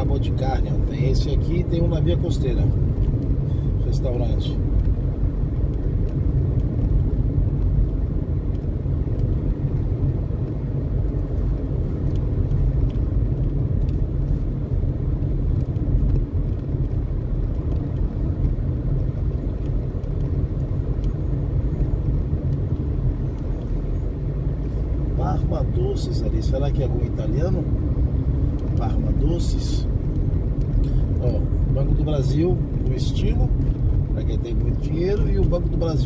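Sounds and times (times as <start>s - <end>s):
car engine and tyre rumble: 0.0s - 36.0s.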